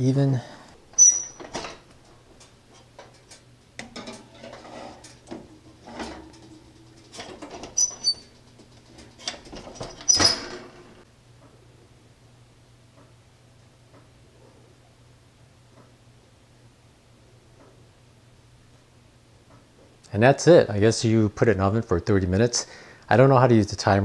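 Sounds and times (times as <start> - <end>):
low steady hum: 0.0 - 24.0
oven door opening: 3.1 - 11.0
oven door shutting with clunk: 3.8 - 7.8.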